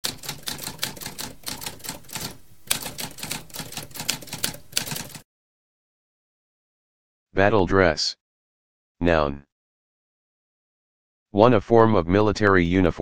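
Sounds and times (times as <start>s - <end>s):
typewriter key strikes: 0.0s - 5.2s.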